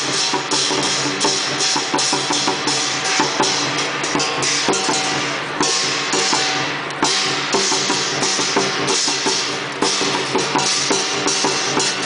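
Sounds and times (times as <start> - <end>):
cymbal crashes: 0.0 - 12.0
large drum beaten fast: 0.0 - 12.0.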